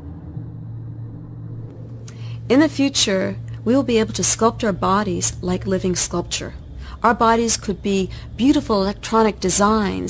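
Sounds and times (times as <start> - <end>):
low rumble: 0.0 - 10.0
steady low hum: 0.0 - 10.0.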